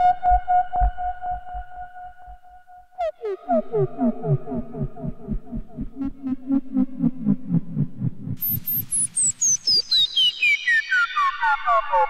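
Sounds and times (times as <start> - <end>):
low throbbing pulse: 0.0 - 9.6
synthesizer descending bleeps: 8.4 - 12.0.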